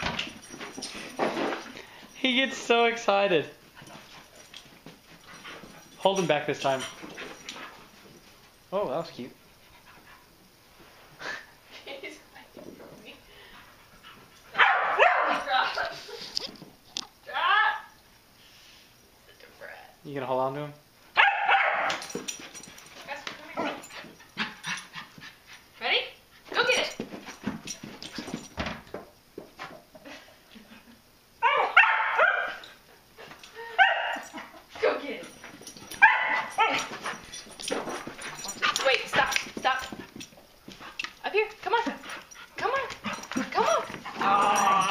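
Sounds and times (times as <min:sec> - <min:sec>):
dog barking: 0:14.5 - 0:15.5, 0:21.2 - 0:22.0, 0:31.4 - 0:32.6, 0:33.8 - 0:34.3, 0:36.0 - 0:36.9
dog barking and yelping: 0:14.5 - 0:15.9, 0:21.2 - 0:22.1, 0:31.4 - 0:32.8, 0:33.6 - 0:34.6, 0:35.7 - 0:39.9.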